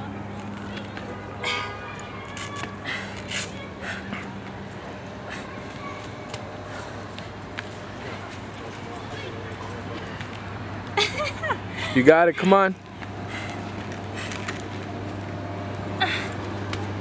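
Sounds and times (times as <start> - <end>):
distant voices: 0.0 - 17.0.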